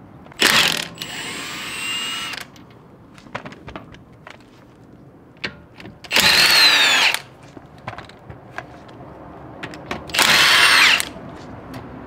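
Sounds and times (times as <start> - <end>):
impact wrench running: 0.4 - 2.5, 6.1 - 7.3, 10.1 - 11.2.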